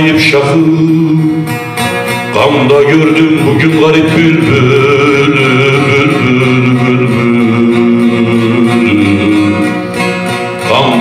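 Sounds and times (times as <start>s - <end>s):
man singing folk song: 0.0s - 11.0s.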